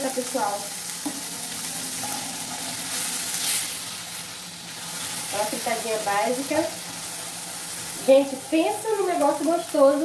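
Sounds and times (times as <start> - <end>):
vegetables sizzling in a frying pan: 0.0 - 10.0.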